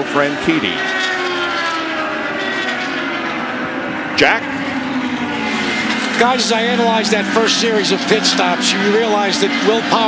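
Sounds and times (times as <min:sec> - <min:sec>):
race car engine at high revs: 0:00.0 - 0:10.0.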